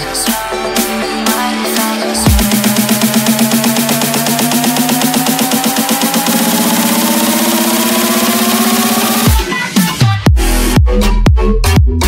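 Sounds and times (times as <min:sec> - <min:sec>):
buzzing synth tone rising: 0:02.2 - 0:09.4.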